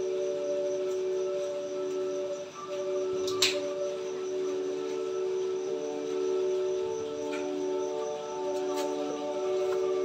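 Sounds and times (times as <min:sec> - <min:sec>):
faint hiss: 0:00.0 - 0:10.0
held ringing drone tones: 0:00.0 - 0:10.0.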